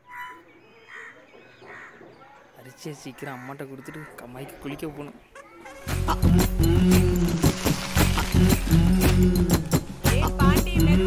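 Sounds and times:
crow cawing: 0:00.1 - 0:02.1, 0:03.2 - 0:04.5.

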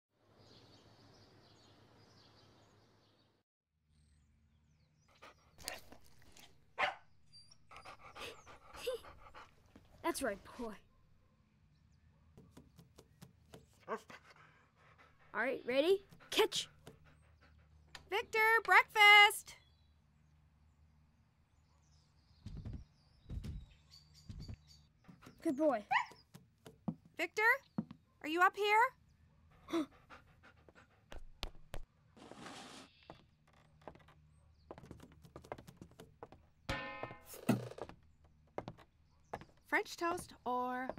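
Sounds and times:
dog panting and snuffling: 0:05.2 - 0:06.7, 0:07.6 - 0:10.6, 0:13.7 - 0:17.9, 0:29.6 - 0:31.8.

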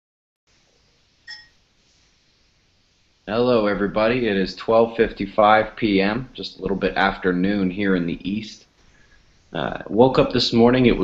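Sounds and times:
faint hiss: 0:00.5 - 0:11.0.

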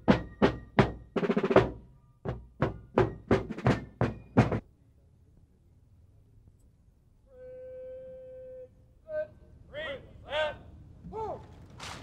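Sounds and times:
field drums marching cadence: 0:00.0 - 0:04.6.

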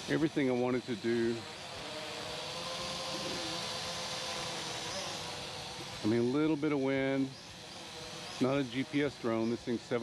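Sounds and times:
toy drone buzzing whine: 0:00.0 - 0:10.0.

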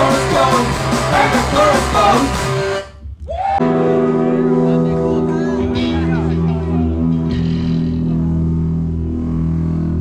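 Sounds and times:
electric guitars and bass drone: 0:00.0 - 0:03.0, 0:03.6 - 0:10.0.

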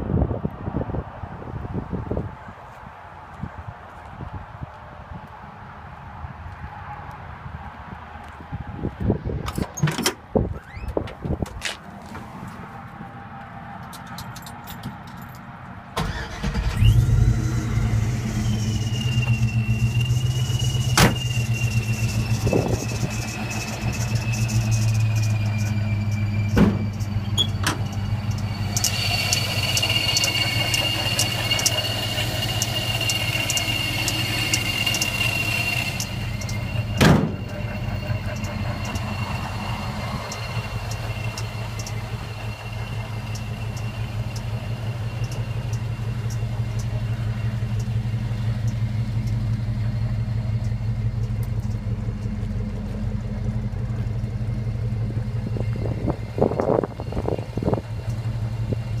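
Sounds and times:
engine revving bursts: 0:16.0 - 0:48.7
car engine idling: 0:16.0 - 0:59.0
supercharger whine: 0:16.0 - 0:59.0
sharp slam: 0:37.0 - 0:37.5.

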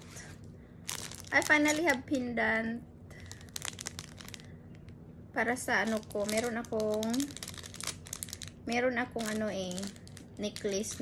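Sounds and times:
plastic bag crinkling: 0:00.8 - 0:02.1, 0:03.2 - 0:04.6, 0:05.8 - 0:11.0.

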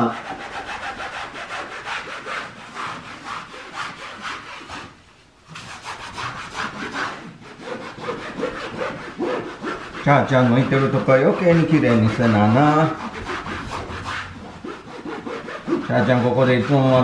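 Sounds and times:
scrubbing a wall by hand: 0:00.0 - 0:17.0.

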